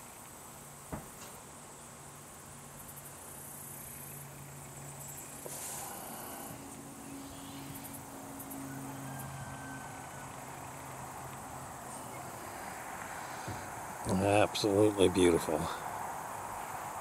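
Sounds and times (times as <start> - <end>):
insects chirring: 0.0 - 17.0
steady low hum: 0.0 - 17.0
brief hiss: 5.4 - 6.5.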